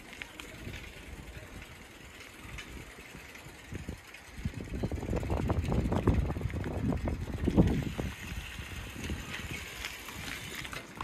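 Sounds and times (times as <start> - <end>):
bicycle riding rumble: 0.0 - 11.0
wind on microphone: 2.8 - 10.7.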